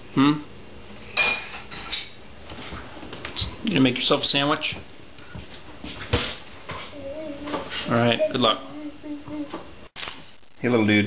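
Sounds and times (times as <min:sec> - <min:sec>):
toddler humming: 0:06.9 - 0:09.7.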